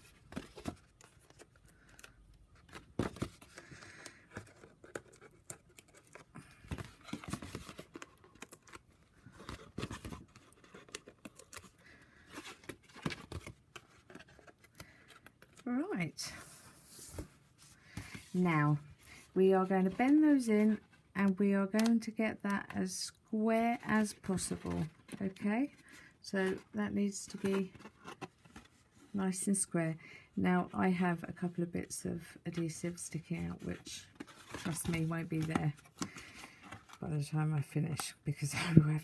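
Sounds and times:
card rustling and ticking: 0:00.0 - 0:11.8.

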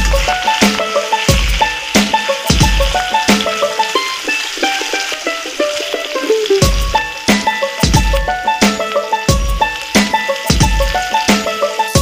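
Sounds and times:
background music melody: 0:00.0 - 0:12.0
fish frying in oil: 0:00.0 - 0:12.0.

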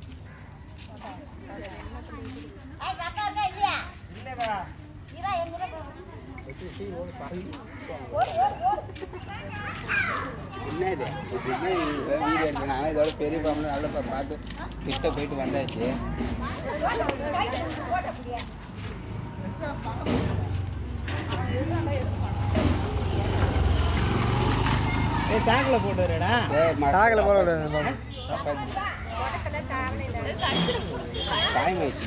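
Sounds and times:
child's high voice: 0:09.6 - 0:10.7.

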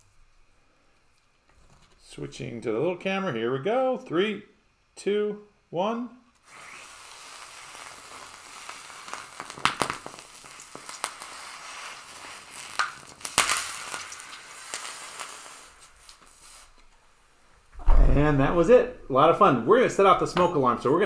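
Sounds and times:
sizzling hiss: 0:00.0 - 0:00.7, 0:06.4 - 0:17.7
sharp pops: 0:06.4 - 0:16.9.

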